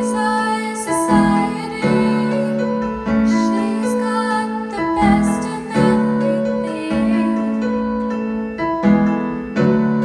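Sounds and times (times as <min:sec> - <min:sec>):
electric piano chords: 0:00.0 - 0:10.0.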